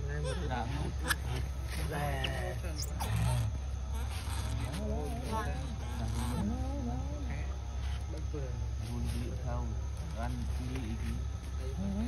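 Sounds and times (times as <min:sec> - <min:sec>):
steady low hum: 0:00.0 - 0:12.0
young monkey whimpering: 0:02.2 - 0:04.7.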